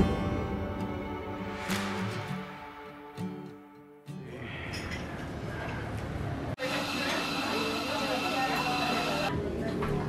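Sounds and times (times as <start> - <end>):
indistinct chatter: 6.5 - 10.0.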